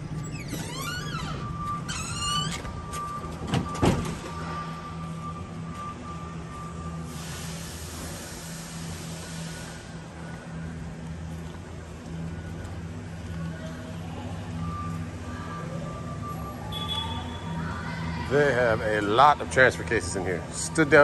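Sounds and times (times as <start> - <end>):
machinery hum: 0.0 - 21.0.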